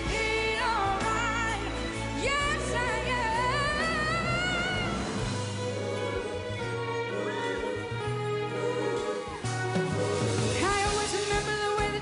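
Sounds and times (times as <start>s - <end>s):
backing accompaniment: 1.2s - 12.0s.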